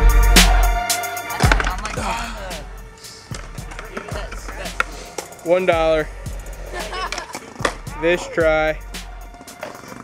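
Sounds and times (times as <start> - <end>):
hip-hop music: 0.0 - 10.0
voices: 0.4 - 10.0
skateboards rolling: 1.0 - 2.2, 3.0 - 10.0
skateboard clacks: 1.4 - 2.0, 3.3 - 5.4, 7.0 - 7.9, 9.3 - 10.0.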